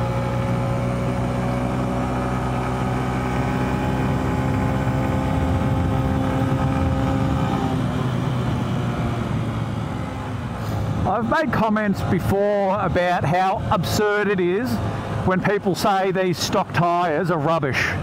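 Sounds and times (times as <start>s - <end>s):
motorcycle engine at full throttle: 0.0s - 18.0s.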